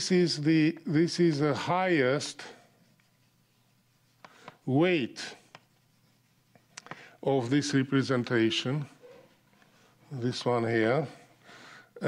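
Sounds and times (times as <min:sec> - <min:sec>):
chalk scratching on blackboard: 0:00.0 - 0:11.4
chalk tapping on blackboard: 0:01.3 - 0:09.8.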